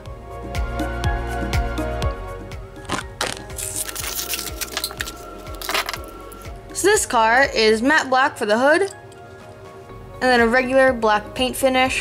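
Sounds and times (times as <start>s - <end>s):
background music with steady beat: 0.0s - 12.0s
plastic packaging crinkling and tearing: 2.8s - 6.2s.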